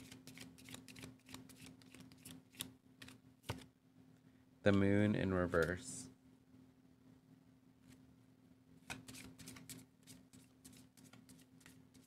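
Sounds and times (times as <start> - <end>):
cards being shuffled: 0.0 - 3.7, 8.8 - 12.0
faint steady hum: 0.0 - 12.0.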